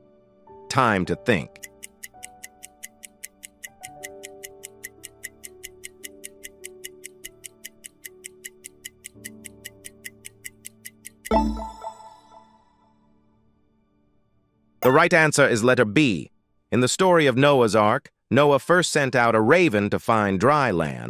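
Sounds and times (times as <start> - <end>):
soft background music: 0.0 - 16.8
rapid clock ticking: 1.5 - 12.0.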